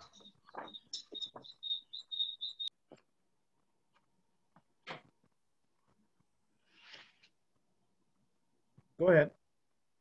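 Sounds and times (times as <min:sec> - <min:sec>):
short high-pitched chirps: 0:00.0 - 0:02.7.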